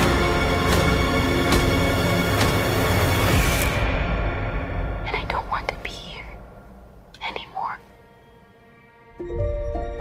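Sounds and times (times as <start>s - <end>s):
person whispering: 5.0s - 6.5s, 7.1s - 7.9s.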